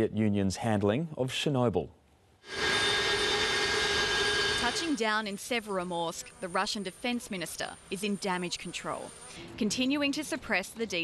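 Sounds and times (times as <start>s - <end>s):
jet engine whine and rush: 2.5s - 5.0s.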